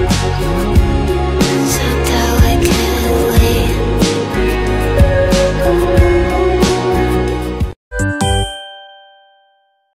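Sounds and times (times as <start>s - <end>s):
bell-like chime ringing: 8.0s - 10.0s.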